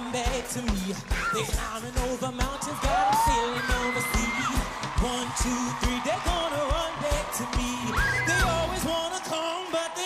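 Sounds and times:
live band playing pop-rock: 0.0s - 9.5s
man singing: 0.0s - 10.0s.

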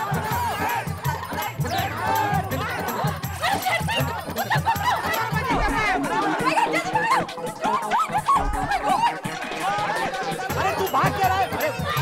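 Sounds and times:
background music: 0.0s - 12.0s
people shouting: 0.0s - 12.0s.

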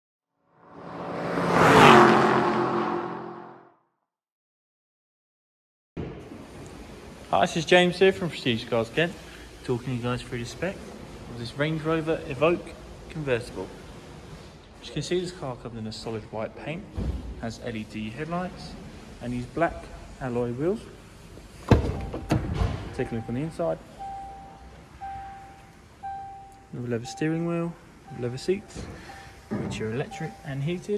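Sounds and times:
car warning chime: 23.0s - 30.9s.

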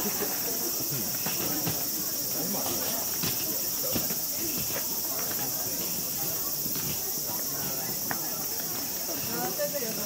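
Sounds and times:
cicadas chorus: 0.0s - 10.0s
murmur of people talking: 0.0s - 10.0s.

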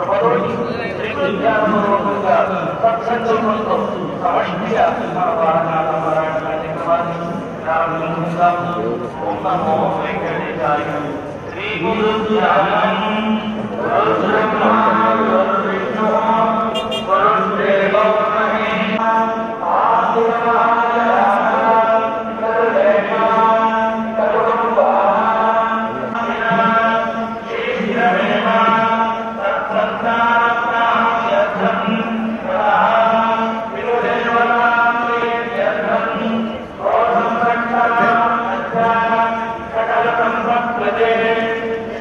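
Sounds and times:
person singing devotional chant: 0.0s - 42.0s.

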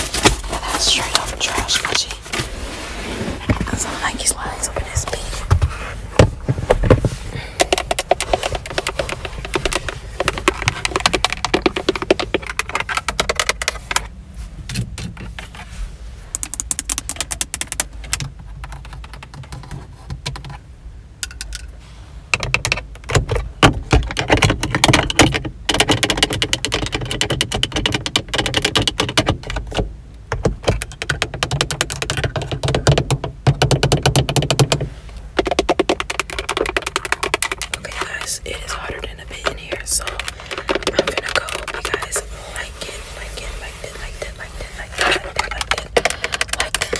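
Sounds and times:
fingernails tapping on plastic: 22.4s - 42.2s.

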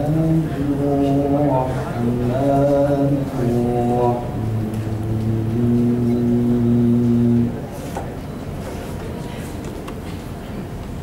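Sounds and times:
man chanting recitation: 0.0s - 7.7s.

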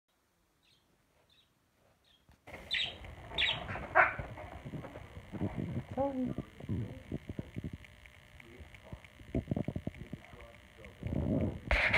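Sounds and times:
budgerigar chirping: 0.6s - 4.3s.

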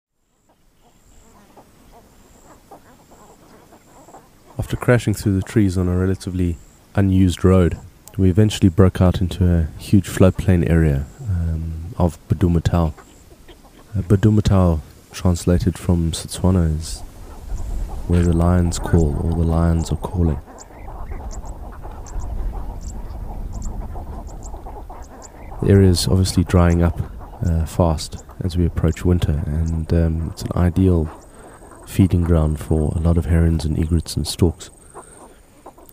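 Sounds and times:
short bird calls: 0.2s - 8.3s, 10.0s - 33.8s, 34.6s - 35.9s
steady low rumble: 14.0s - 34.3s.

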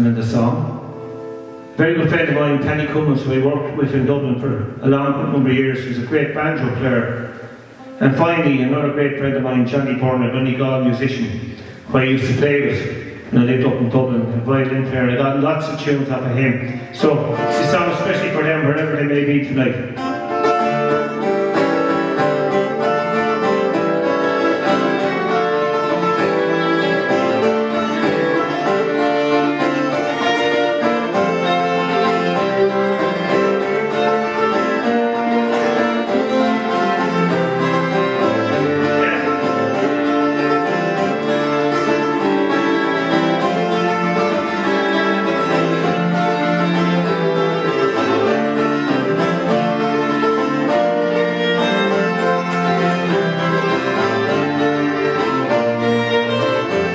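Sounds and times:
acoustic guitar and cittern strumming: 0.0s - 56.9s
fiddle playing tune: 0.0s - 56.9s.

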